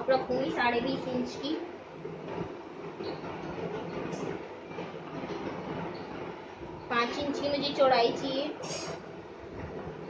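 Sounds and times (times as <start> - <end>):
low rumbling background noise: 0.0 - 10.0.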